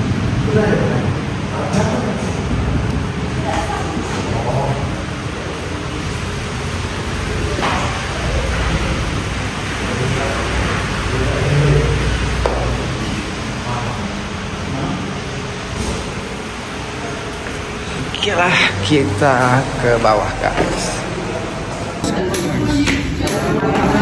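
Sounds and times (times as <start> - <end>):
rain hissing: 0.0 - 22.0
people talking indistinctly: 16.8 - 24.0.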